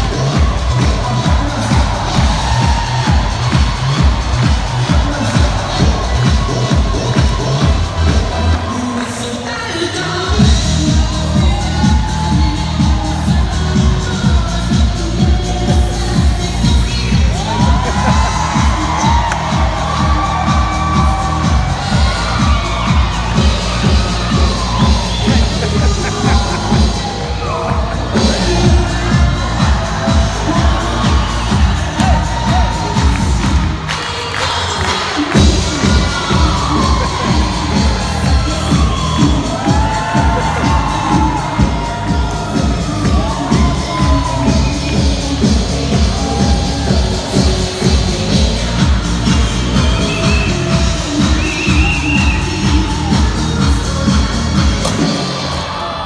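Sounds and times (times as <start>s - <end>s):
music with thumping beat: 0.0s - 8.7s, 10.4s - 33.9s, 35.1s - 55.6s
audience cheering and shouting: 0.0s - 56.0s.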